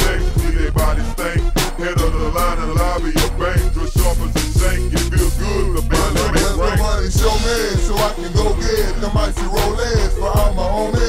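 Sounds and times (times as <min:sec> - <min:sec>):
rapping over a beat: 0:00.0 - 0:11.0
deep bass drum hits: 0:04.0 - 0:08.7.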